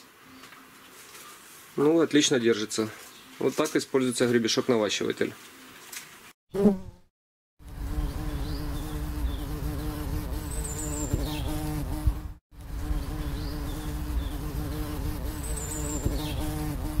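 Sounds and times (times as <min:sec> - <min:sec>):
bees buzzing: 0:07.6 - 0:17.0.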